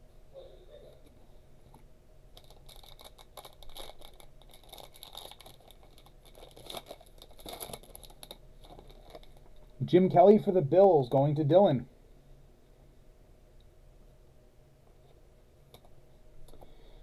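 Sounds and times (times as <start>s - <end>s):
trading cards rustling: 2.4s - 9.5s.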